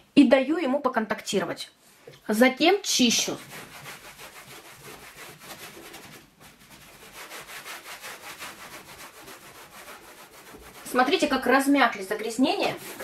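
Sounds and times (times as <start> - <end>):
cloth scrubbing a panel: 2.8 - 13.0.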